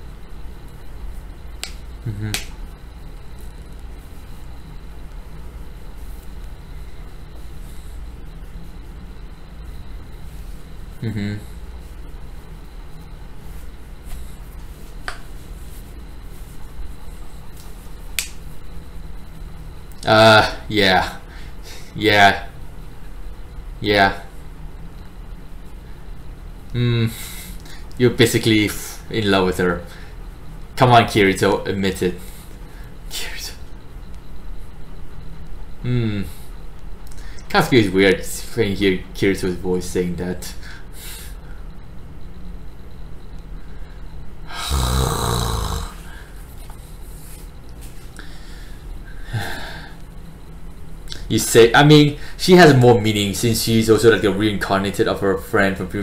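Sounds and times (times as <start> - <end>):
low steady hum: 0.0 - 56.0
man laughing breathily: 11.0 - 11.6.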